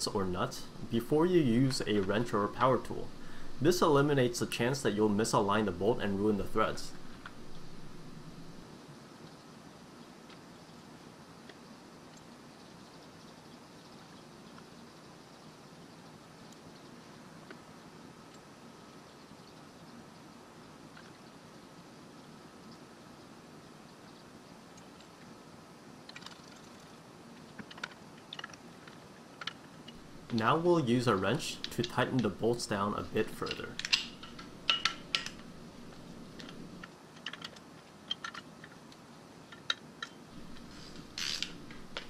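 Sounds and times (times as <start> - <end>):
faint steady hiss: 0.0 - 42.0.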